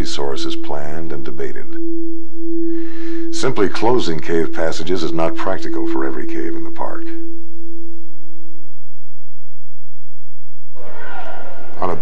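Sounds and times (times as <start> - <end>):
low steady hum: 0.0 - 12.0
steady pure tone: 0.0 - 12.0.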